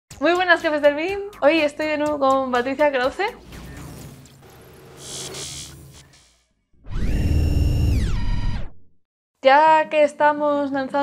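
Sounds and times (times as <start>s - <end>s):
electronic tone dropping in pitch: 3.4s - 9.0s.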